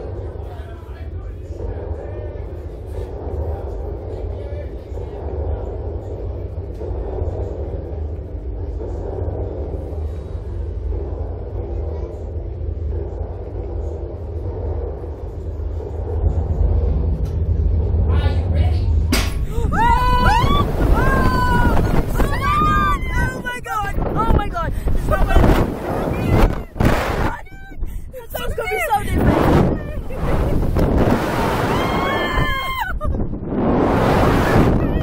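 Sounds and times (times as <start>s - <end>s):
steady low rumble: 0.0s - 35.0s.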